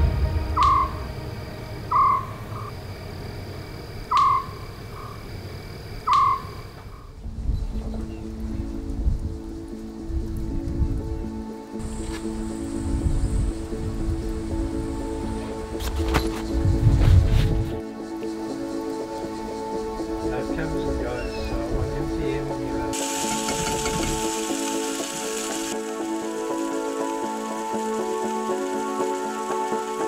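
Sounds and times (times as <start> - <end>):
animal calls with echoing note: 0.0 - 1.1, 1.8 - 2.8, 20.0 - 21.7
background music with held notes: 0.0 - 2.8, 7.2 - 30.0
high insect trill: 0.0 - 30.0.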